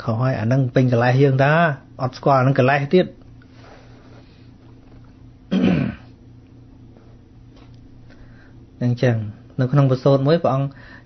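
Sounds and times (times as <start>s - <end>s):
man clearing his throat: 5.5s - 6.2s.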